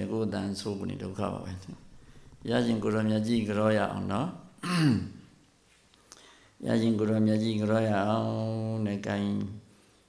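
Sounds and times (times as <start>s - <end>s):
man's voice through microphone: 0.0s - 5.2s, 6.6s - 9.6s.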